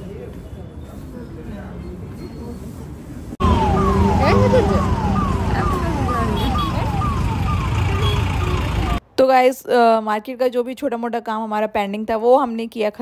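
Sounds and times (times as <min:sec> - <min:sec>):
busy street traffic: 0:00.0 - 0:09.2
falling electronic tone: 0:03.4 - 0:09.0.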